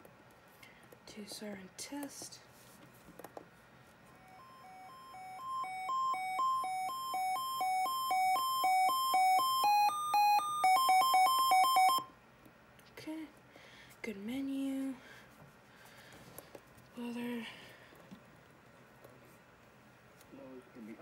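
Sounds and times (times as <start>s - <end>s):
two-tone alert siren beeps: 4.2s - 12.1s.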